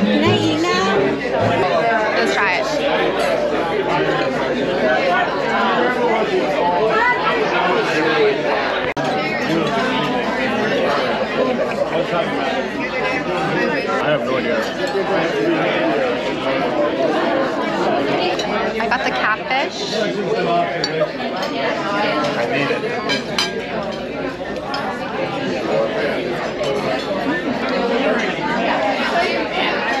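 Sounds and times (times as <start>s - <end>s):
diners talking: 0.0s - 30.0s.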